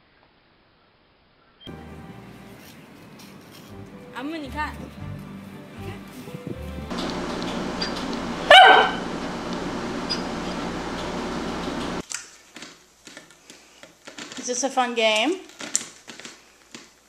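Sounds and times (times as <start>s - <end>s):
room noise hiss: 6.9s - 14.0s
dog barking: 8.5s - 9.0s.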